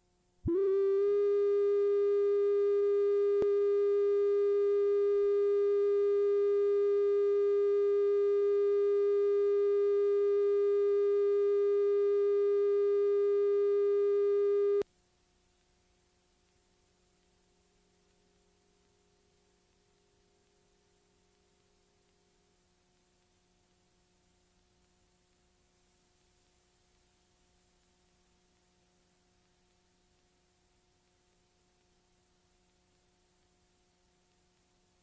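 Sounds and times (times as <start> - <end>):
steady mid-pitched test tone: 0.5 - 14.8.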